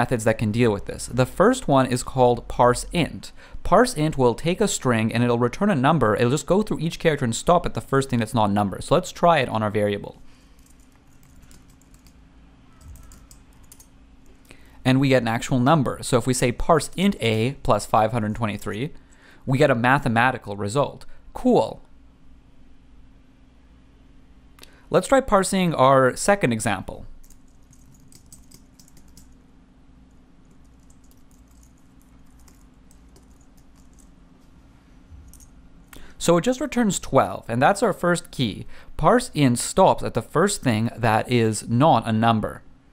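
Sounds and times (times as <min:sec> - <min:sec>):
faint steady hum: 0:00.0 - 0:42.9
keyboard typing: 0:10.6 - 0:13.9, 0:27.2 - 0:29.4, 0:30.1 - 0:34.2.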